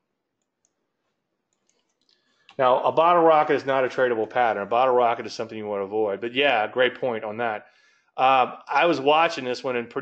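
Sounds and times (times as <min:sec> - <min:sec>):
faint clicks: 0:00.4 - 0:02.6.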